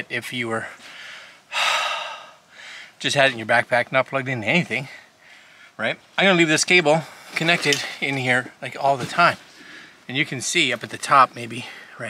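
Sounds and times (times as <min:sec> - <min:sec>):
man breathing heavily: 0:00.6 - 0:03.0, 0:05.0 - 0:05.8, 0:11.6 - 0:12.0.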